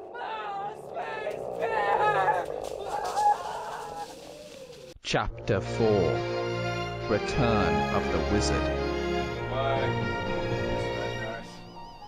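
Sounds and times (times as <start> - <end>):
high-pitched wavering vocal cries: 0.0 - 4.9.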